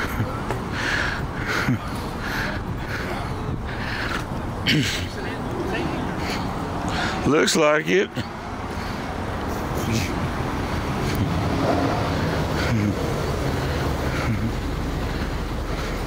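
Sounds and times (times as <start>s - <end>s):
low rumble of cars driving: 0.0s - 16.0s.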